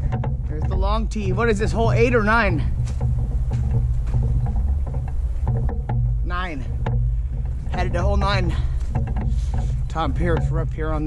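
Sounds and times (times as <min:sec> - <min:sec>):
footsteps on dirt trail: 0:00.0 - 0:11.0
wind buffeting microphone: 0:00.0 - 0:11.0.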